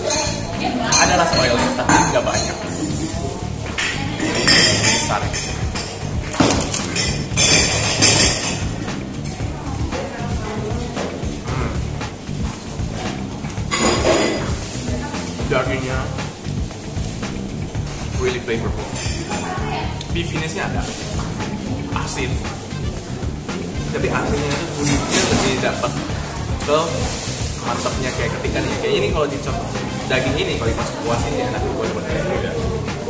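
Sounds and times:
background music with steady groove: 0.0 - 33.0.

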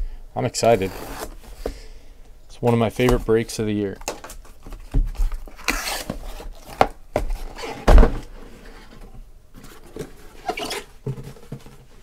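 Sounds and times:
cardboard flaps scraping rustle: 4.2 - 12.0.

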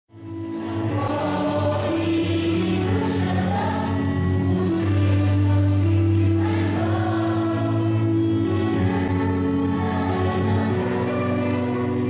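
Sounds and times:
choir singing long notes: 0.3 - 12.0.

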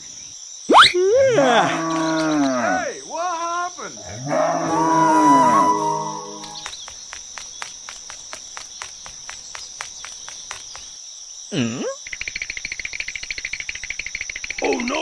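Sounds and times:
crickets chirring: 0.0 - 15.0.

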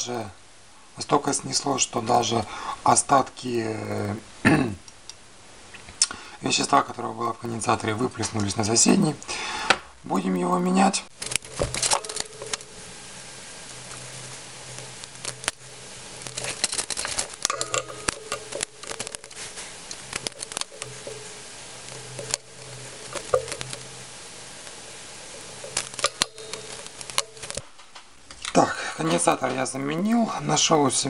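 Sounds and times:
steady low hum: 10.9 - 31.0
hands handling parts and tools: 11.1 - 12.9, 13.7 - 28.1.

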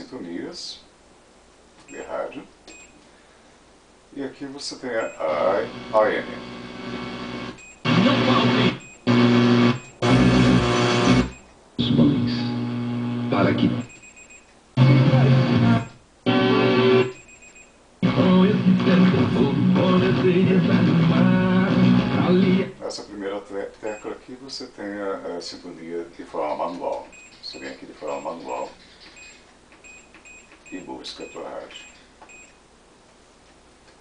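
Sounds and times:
radio tuning between stations: 4.8 - 13.9, 14.8 - 17.1, 26.4 - 28.8
music on radio: 5.4 - 13.8, 14.8 - 17.1, 18.0 - 22.7.

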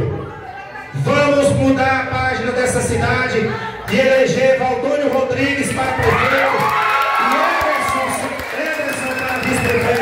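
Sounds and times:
crowd cheering and shouting: 5.6 - 10.0.

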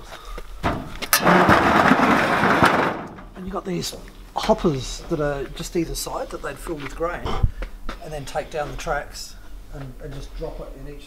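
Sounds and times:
iron sheet rattling and scraping: 0.6 - 3.4.

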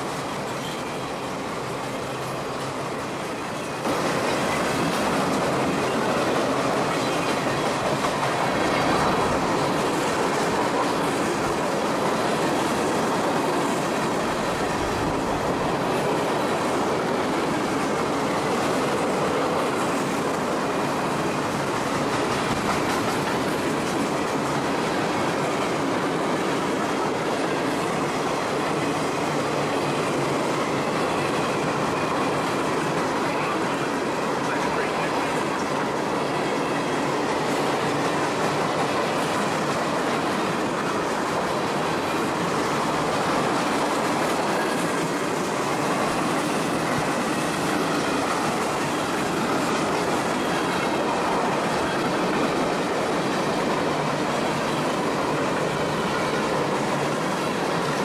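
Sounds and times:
freight train wheels clattering: 0.0 - 58.0.

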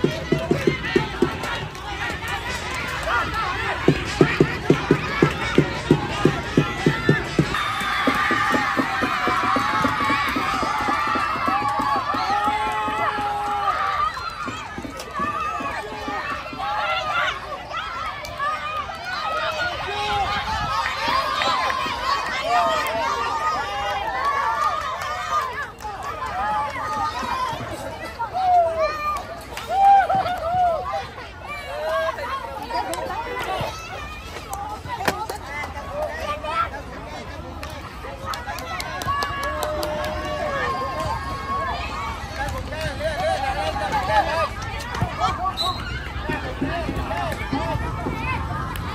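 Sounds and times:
children shouting and cheering: 0.0 - 48.9
crowd chatter: 0.0 - 48.9.

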